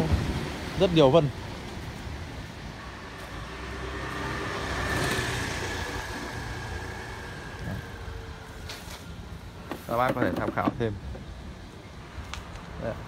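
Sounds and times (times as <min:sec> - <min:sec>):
road vehicle passing by: 0:00.0 - 0:10.0.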